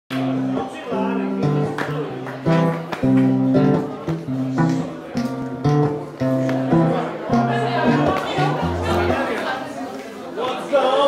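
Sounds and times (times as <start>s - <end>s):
acoustic guitar strumming: 0.1s - 9.6s
people talking: 0.1s - 11.0s.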